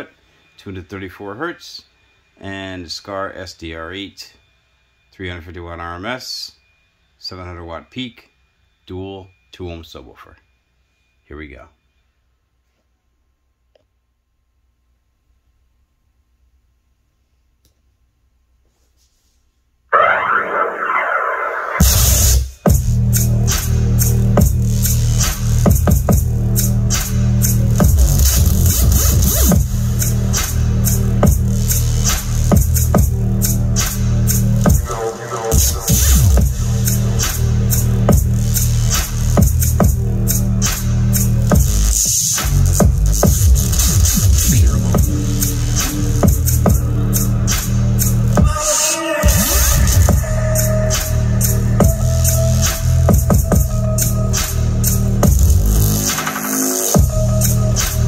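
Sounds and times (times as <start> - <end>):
bass-heavy dubstep music: 20.0 - 58.0.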